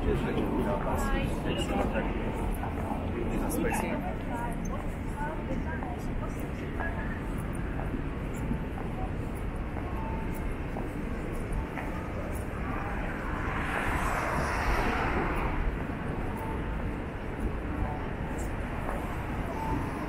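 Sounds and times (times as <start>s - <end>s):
low rumble of traffic: 0.0s - 20.0s
vehicle passing: 12.0s - 17.2s.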